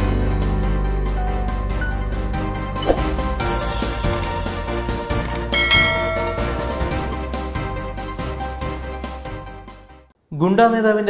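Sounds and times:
background music: 0:00.0 - 0:10.1
bright bell ding: 0:05.6 - 0:07.1.

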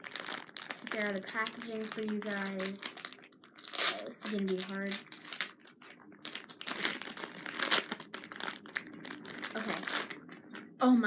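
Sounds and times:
plastic packaging crinkling: 0:00.0 - 0:10.8.

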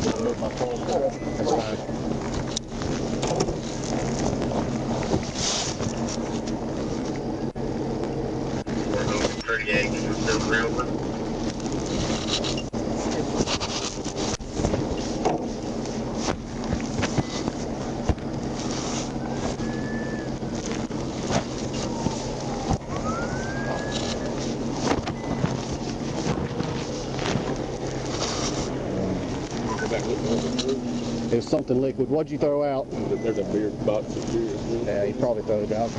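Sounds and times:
steady low hum: 0:00.0 - 0:35.9
wind noise on microphone: 0:19.1 - 0:27.6.

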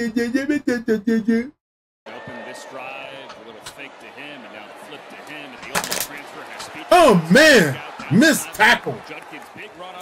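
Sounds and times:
stadium crowd noise: 0:02.1 - 0:10.0
commentator talking: 0:02.2 - 0:10.0.

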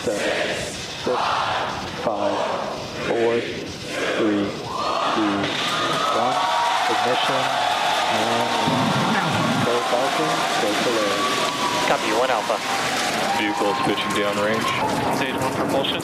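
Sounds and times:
steady rushing noise: 0:00.0 - 0:16.0
voices: 0:00.0 - 0:16.0.

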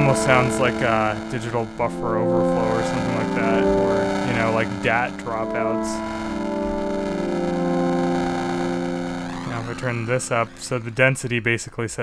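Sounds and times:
sustained synth pad chord: 0:00.0 - 0:11.2.

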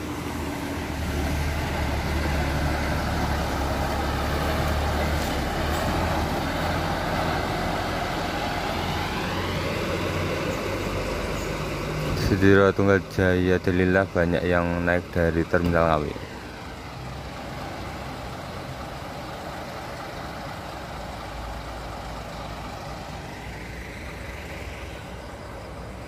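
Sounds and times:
bus diesel engine rumble: 0:00.0 - 0:26.0
road noise: 0:00.0 - 0:26.0.

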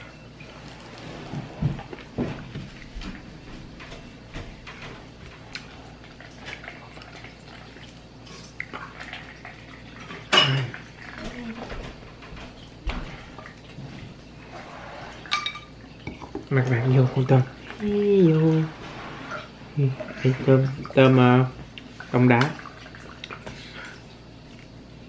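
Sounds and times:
dishes and utensils clinking: 0:10.0 - 0:12.7, 0:15.1 - 0:16.5.

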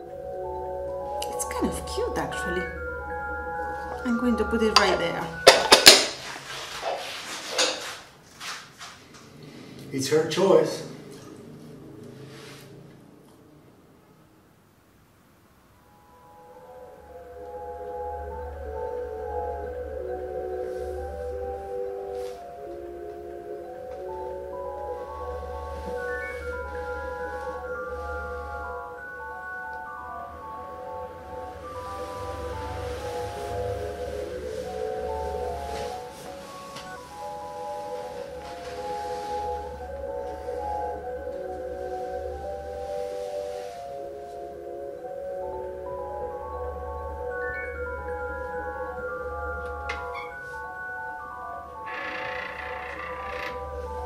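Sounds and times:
music-box melody: 0:00.0 - 0:06.3, 0:15.8 - 0:52.0
low drone: 0:15.9 - 0:54.0.

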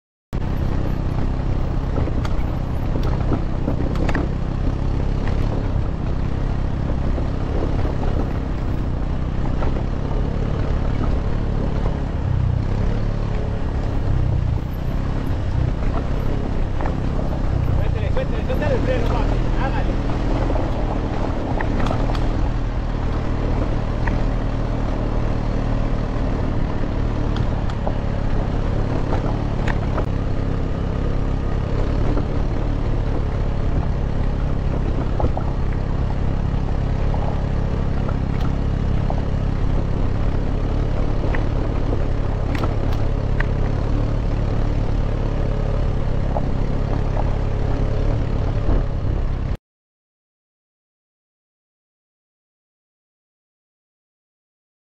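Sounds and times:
wind rumble on microphone: 0:00.4 - 0:45.2, 0:46.0 - 0:49.6.

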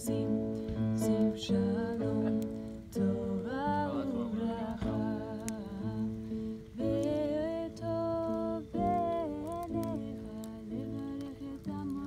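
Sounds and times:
acoustic guitar: 0:00.0 - 0:12.0
women singing hummed notes: 0:00.0 - 0:12.0.

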